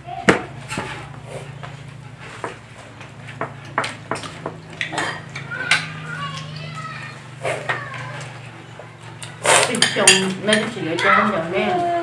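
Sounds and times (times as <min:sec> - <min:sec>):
dishes and utensils clattering: 0:00.5 - 0:06.8, 0:07.4 - 0:11.8.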